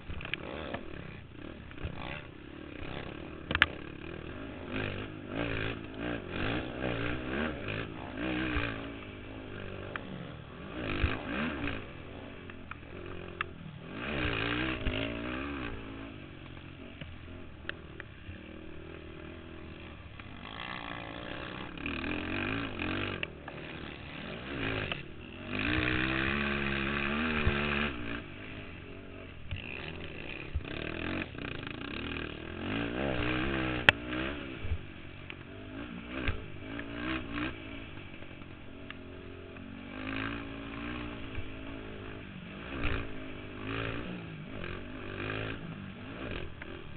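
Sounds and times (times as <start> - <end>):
quad engine revving: 0.0 - 46.9.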